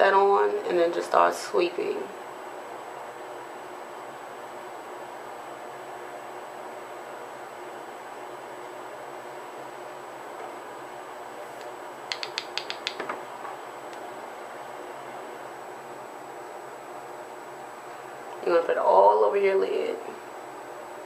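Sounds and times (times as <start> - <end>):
light sharp clicks: 11.6 - 13.1.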